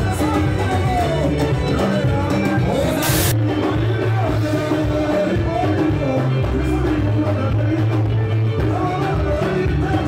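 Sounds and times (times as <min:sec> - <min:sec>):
bass: 0:00.0 - 0:10.0
guitar: 0:00.0 - 0:10.0
live rumba band music: 0:00.0 - 0:10.0
person singing: 0:00.0 - 0:10.0
short burst of hiss: 0:03.0 - 0:03.4.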